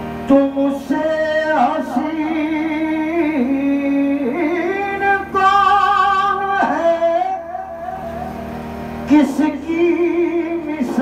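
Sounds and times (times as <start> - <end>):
man singing devotional song: 0.3 - 11.0.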